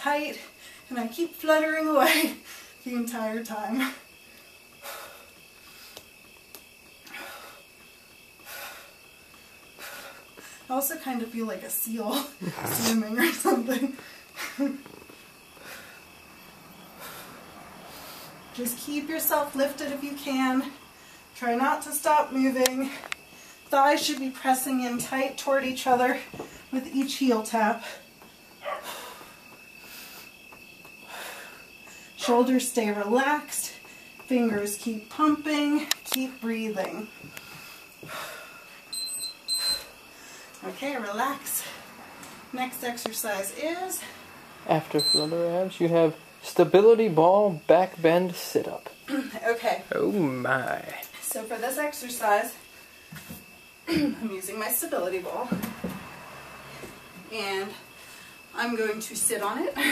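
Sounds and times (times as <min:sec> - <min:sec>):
faint high-pitched whine: 0:00.0 - 0:59.9
woman breathing hard: 0:07.0 - 0:10.7, 0:31.0 - 0:32.2, 0:37.2 - 0:38.9.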